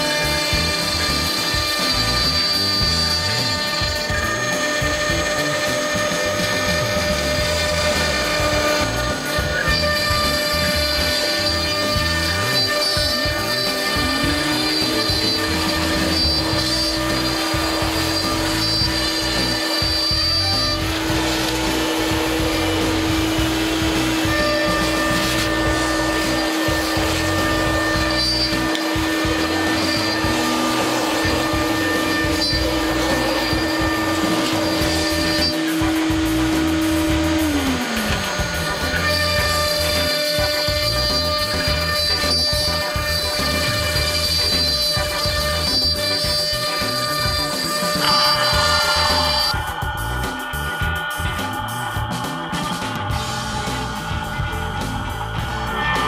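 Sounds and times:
cnc router cutting wood: 0:00.0 - 0:56.0
steady motor whine: 0:00.0 - 0:56.0.

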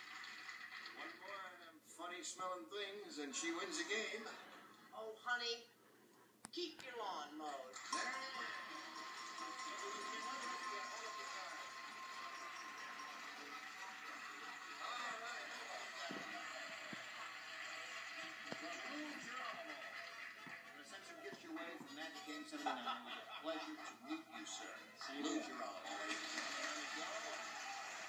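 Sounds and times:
studio audience noise: 0:07.7 - 0:28.0.

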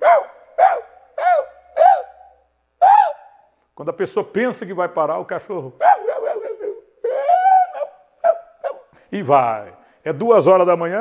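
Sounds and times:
man imitating dog yapping: 0:00.0 - 0:03.4, 0:05.8 - 0:09.0.

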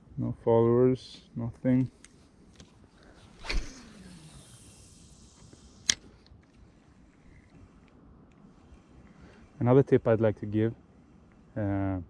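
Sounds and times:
fishing rod swish and line whir: 0:03.0 - 0:07.8.

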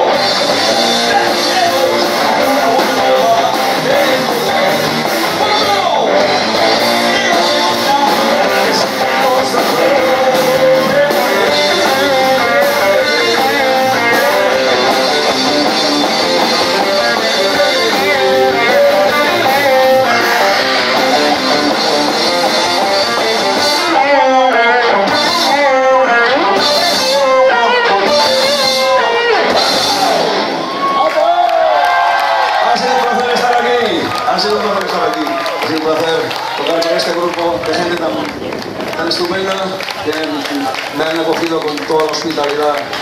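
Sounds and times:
bass guitar: 0:00.0 - 0:31.8
drums: 0:00.0 - 0:43.0
electric guitar: 0:00.0 - 0:43.0
man singing into microphone: 0:00.5 - 0:06.2, 0:07.2 - 0:20.6.

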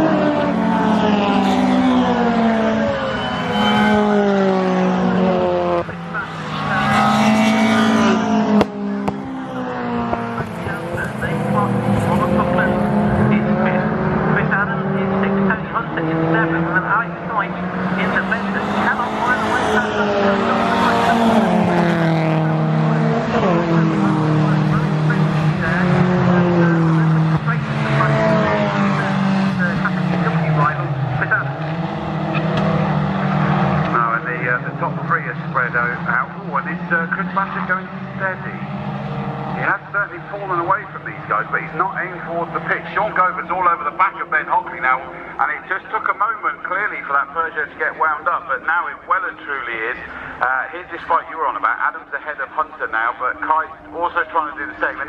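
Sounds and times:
racing car engines passing: 0:00.0 - 0:55.0.

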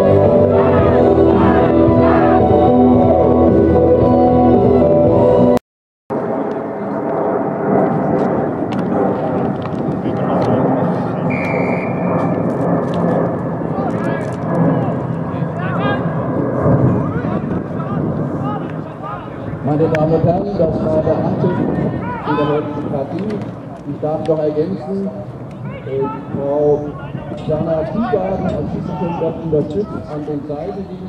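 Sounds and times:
spectators and players shouting: 0:00.0 - 0:03.0
background music: 0:00.0 - 0:05.6
outdoor noise: 0:06.1 - 0:31.0
referee's whistle blast: 0:11.3 - 0:12.0.

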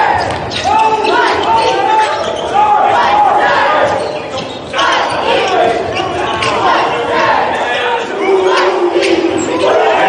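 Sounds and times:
spectators' voices: 0:00.0 - 0:10.0
ball bouncing on hardwood court: 0:00.2 - 0:00.6.

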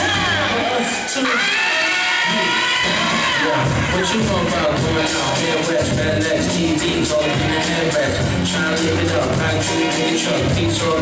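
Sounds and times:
dance music with beat: 0:00.0 - 0:11.0
sliding vocal line: 0:00.0 - 0:11.0.

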